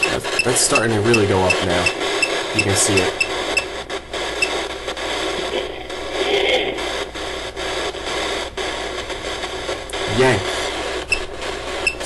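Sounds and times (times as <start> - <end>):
radio-like static hissing: 0.0 - 12.0.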